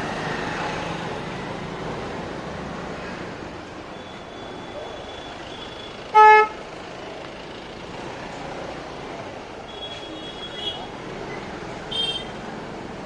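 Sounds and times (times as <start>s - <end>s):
engine and street traffic: 0.0s - 13.0s
vehicle horn toot: 5.1s - 6.6s, 11.9s - 12.3s.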